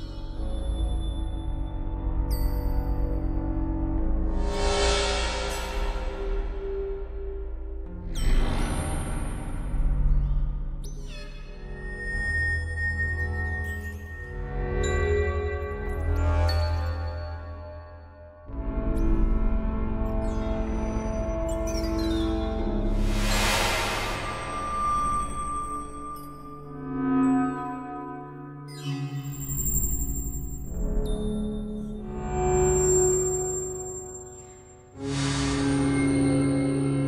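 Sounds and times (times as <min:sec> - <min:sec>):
low synth drone: 0:22.6 - 0:27.0, 0:35.0 - 0:37.0.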